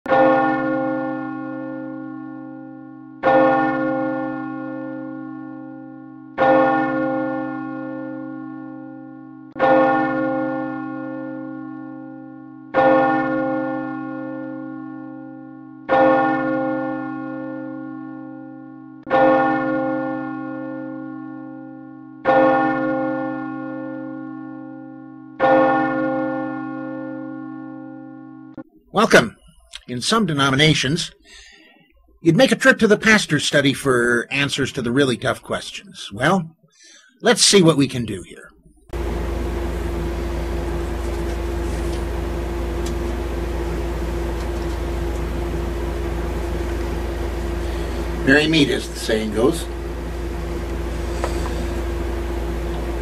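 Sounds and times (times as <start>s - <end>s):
large church bell tolling: 0.0s - 29.3s, 38.9s - 53.0s.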